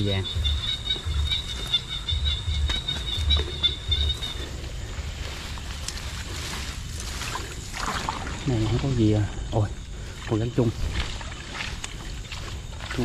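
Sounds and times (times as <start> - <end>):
insect trilling: 0.0 - 13.0
pushing through grass: 2.7 - 13.0.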